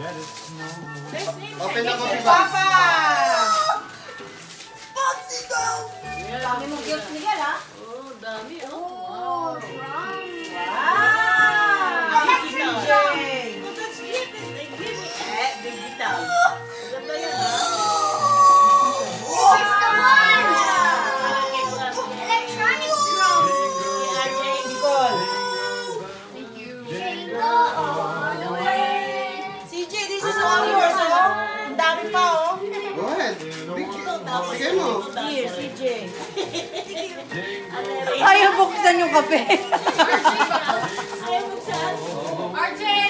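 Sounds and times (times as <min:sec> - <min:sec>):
people talking and exclaiming: 0:00.0 - 0:04.2, 0:04.8 - 0:43.0
background music: 0:00.0 - 0:43.0.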